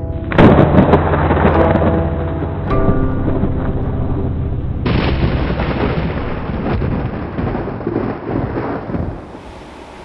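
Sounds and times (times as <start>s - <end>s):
thunder rumbling: 0.0s - 10.0s
rain-like hiss: 6.4s - 10.0s.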